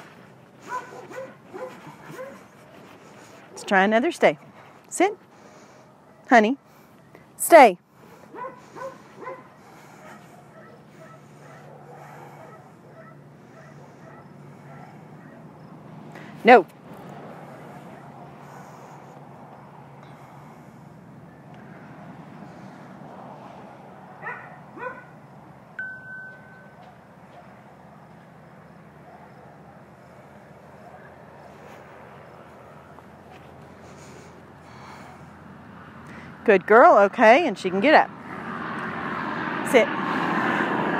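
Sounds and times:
outdoor background noise: 0.0s - 40.9s
faint dog barking: 0.6s - 2.5s, 8.2s - 15.5s, 24.2s - 25.2s, 26.8s - 28.2s, 28.9s - 31.8s
short rising chirps: 25.8s - 26.8s.

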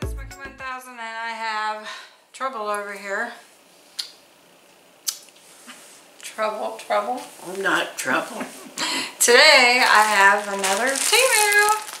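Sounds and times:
woman talking: 6.2s - 8.5s, 9.1s - 12.0s.

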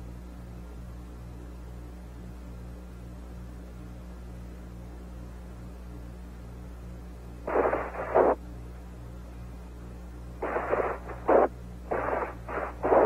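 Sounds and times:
steady low hum: 0.0s - 13.0s
radio static bursts: 7.5s - 8.4s, 10.4s - 13.0s.

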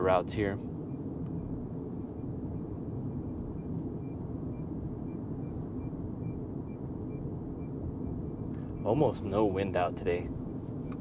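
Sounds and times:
road and tyre noise: 0.0s - 11.0s.

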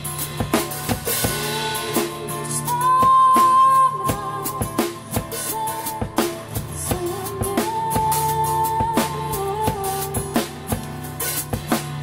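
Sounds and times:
drum kit beat: 0.0s - 12.0s
strummed acoustic guitar: 0.0s - 12.0s.

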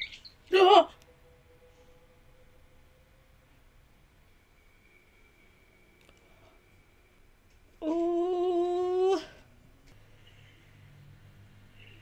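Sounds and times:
woman humming: 7.8s - 9.5s.

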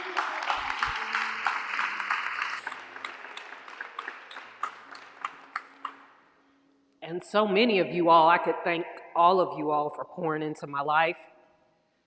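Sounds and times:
crowd clapping: 0.0s - 6.1s.

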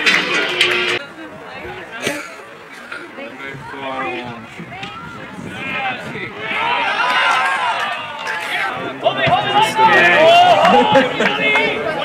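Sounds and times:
men shouting and cheering: 3.6s - 12.0s.

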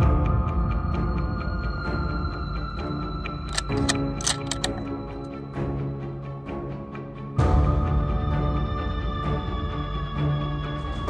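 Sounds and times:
tense soundtrack music: 0.0s - 11.0s
rifle bolt clicking: 3.5s - 5.4s.

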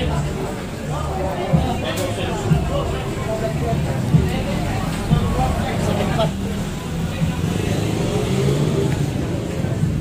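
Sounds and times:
indistinct voices talking: 0.0s - 10.0s.

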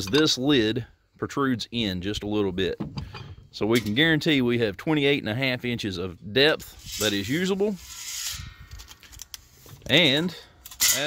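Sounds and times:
tape measure scraping metal rim: 6.6s - 9.9s.

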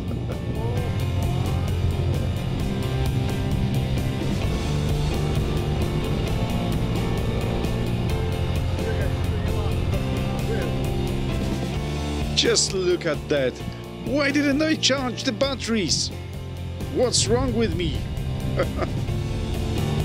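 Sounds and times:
vehicle engine running: 0.0s - 15.2s
background music with steady beat: 0.0s - 20.0s.

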